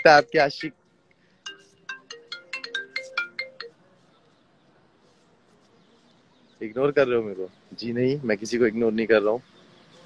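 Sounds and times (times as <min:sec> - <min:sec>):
electronic bell-like ringtone: 0:00.0 - 0:00.7, 0:01.4 - 0:03.8.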